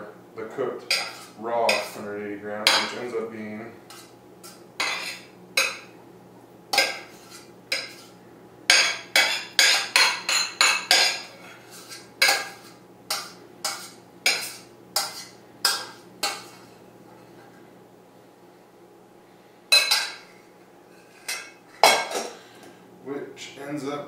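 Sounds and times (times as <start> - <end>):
spoon scraping metal pot: 0.9 - 2.0.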